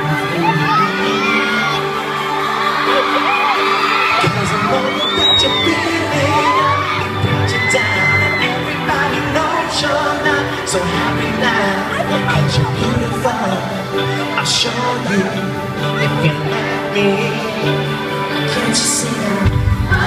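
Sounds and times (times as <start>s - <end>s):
crowd screaming: 0.0s - 20.0s
live pop music over pa: 0.0s - 20.0s.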